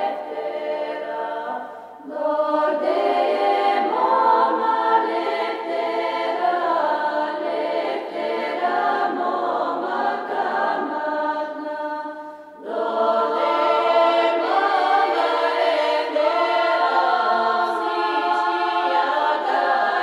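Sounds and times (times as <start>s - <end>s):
women's choir singing a cappella: 0.0s - 20.0s.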